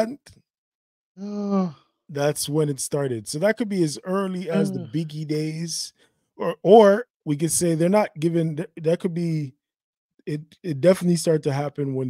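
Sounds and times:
man speaking: 0.0 - 0.3, 2.1 - 9.5, 10.3 - 12.0
man humming held note: 4.4 - 5.2.

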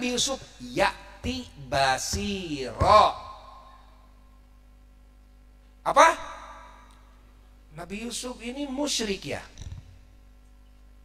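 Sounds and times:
man's amplified speech: 0.0 - 3.7, 5.9 - 6.8, 7.7 - 9.6
faint steady hum: 0.0 - 11.0.

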